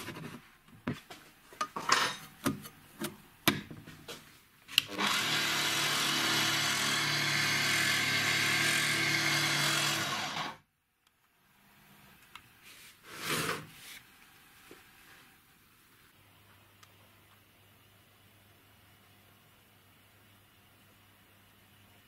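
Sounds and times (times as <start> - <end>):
belt sander motor whine: 4.9 - 10.6.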